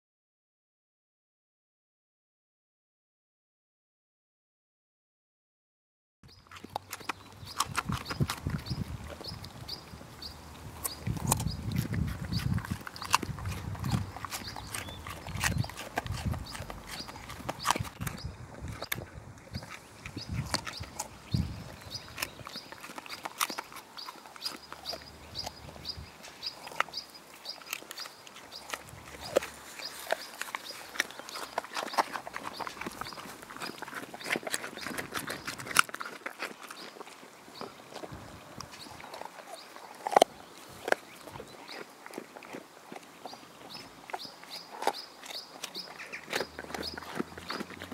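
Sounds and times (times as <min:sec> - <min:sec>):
dogs crunching carrots: 0:06.3 - 0:47.9.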